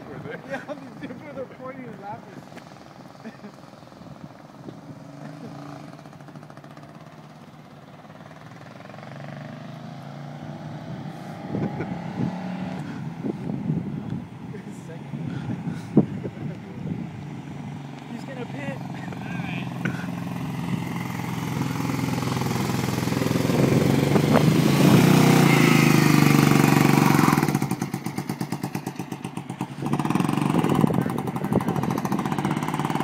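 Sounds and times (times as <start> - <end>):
go-kart engine running: 0.0 - 13.5, 14.7 - 33.0.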